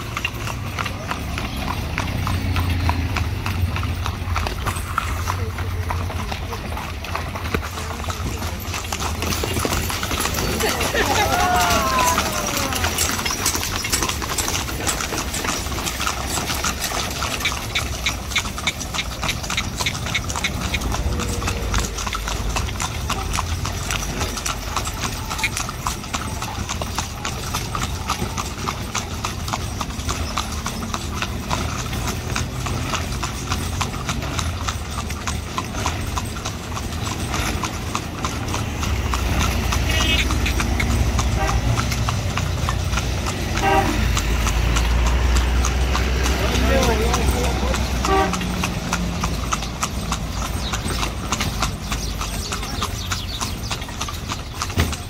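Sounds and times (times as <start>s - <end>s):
horse hooves clip-clopping on pavement: 0.0s - 55.0s.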